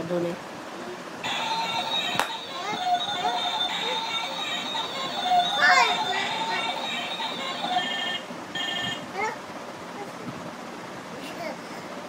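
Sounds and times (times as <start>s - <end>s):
toy telephone electronic tones: 1.3s - 9.0s
young child's voice: 5.5s - 6.8s, 9.1s - 10.4s, 11.1s - 11.9s.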